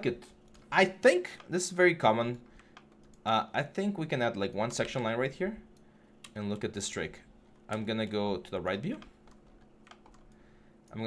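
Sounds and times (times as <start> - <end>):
keyboard and mouse clicks: 7.6 - 11.0.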